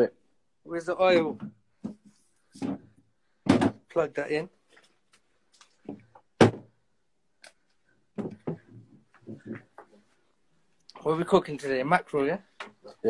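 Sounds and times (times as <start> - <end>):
phone knocks and bumps: 2.6 - 3.8, 6.4 - 6.7, 8.2 - 9.6.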